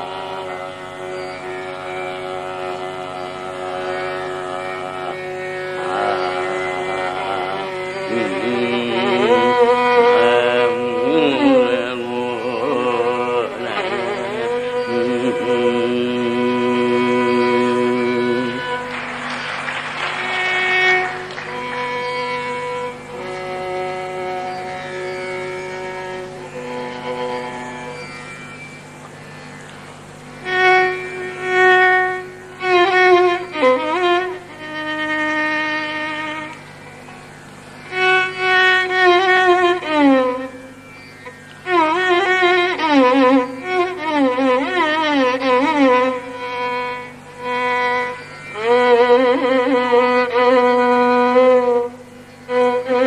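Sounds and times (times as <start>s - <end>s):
ornamented classical vocal melody: 0.0s - 19.1s
tanpura drone: 0.0s - 53.0s.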